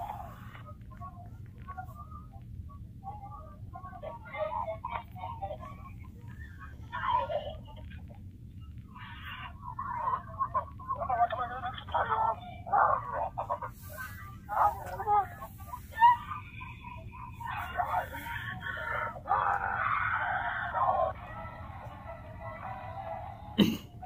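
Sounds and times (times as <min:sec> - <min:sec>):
steady low hum: 0:00.0 - 0:24.0
cartoon voices from small speaker: 0:08.9 - 0:21.2.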